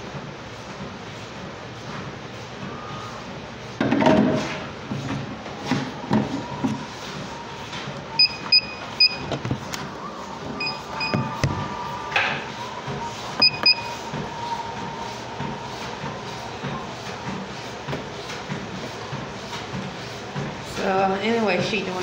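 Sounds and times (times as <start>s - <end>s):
steady machine hum: 0.0s - 22.0s
high electronic beeps: 8.2s - 9.3s, 10.6s - 11.3s, 13.4s - 14.0s.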